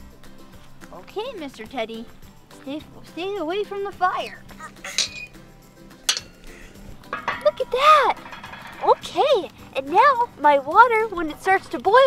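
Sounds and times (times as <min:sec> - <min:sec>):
metal pot clinking on grate: 0:04.9 - 0:05.4, 0:06.0 - 0:09.8.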